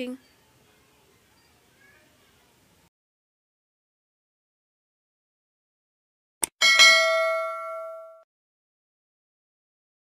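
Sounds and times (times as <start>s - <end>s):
bell-like ding: 6.6s - 8.3s.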